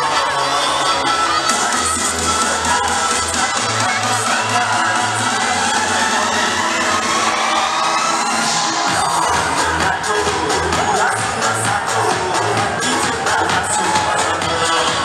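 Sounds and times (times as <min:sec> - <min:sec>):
crowd cheering and shouting: 0:00.0 - 0:15.0
dance music with heavy bass: 0:00.0 - 0:15.0.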